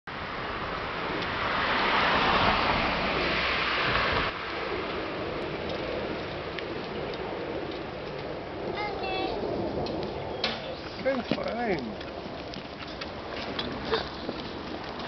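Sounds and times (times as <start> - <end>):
background street hiss: 0.1 - 15.0.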